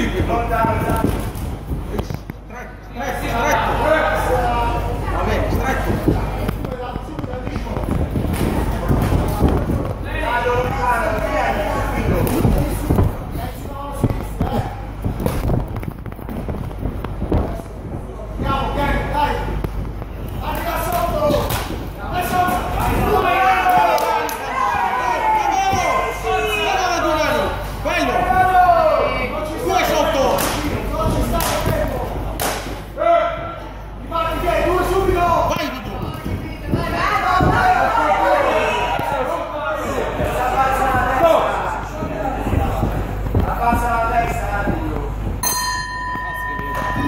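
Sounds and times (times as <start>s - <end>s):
voices shouting: 22.0s - 30.3s, 36.8s - 42.4s.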